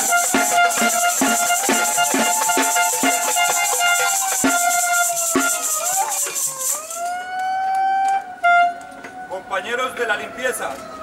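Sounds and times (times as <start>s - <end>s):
siren-like pitched tone: 0.0s - 9.5s.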